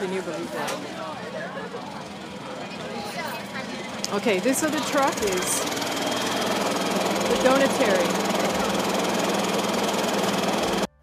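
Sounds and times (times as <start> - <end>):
engine idling: 0.5 - 11.0.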